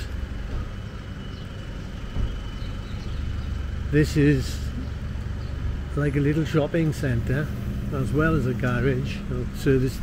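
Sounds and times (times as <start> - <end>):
distant motorway traffic rumble: 0.0 - 10.0
low thump: 2.1 - 2.4.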